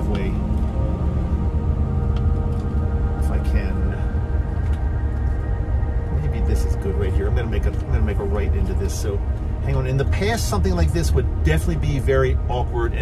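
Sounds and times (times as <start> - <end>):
steady droning tones: 0.0 - 13.0
van engine rumble from inside: 0.0 - 13.0.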